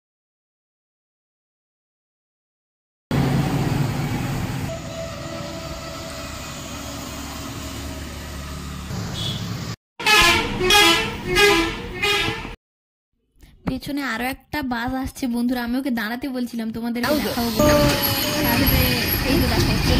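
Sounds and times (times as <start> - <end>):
bus passing: 3.1 - 12.6, 17.0 - 19.9
vehicle horn wavering notes: 4.7 - 7.3, 9.1 - 12.6, 17.5 - 19.1.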